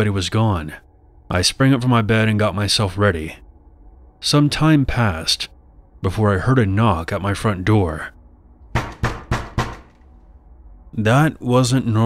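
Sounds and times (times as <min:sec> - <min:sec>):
knocking on a door: 0:08.7 - 0:10.0.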